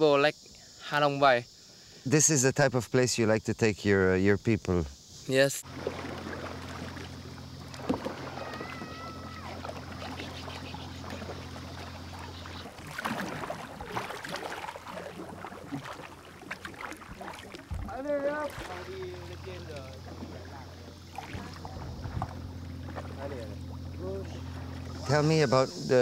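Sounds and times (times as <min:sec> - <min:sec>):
steady low hum: 0:03.4 - 0:26.0
paddles splashing in water: 0:05.6 - 0:25.7
wavering whistle: 0:07.6 - 0:13.0.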